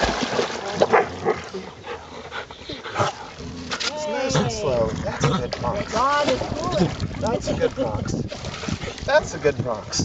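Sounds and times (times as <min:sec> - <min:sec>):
water splashing: 0:00.0 - 0:10.0.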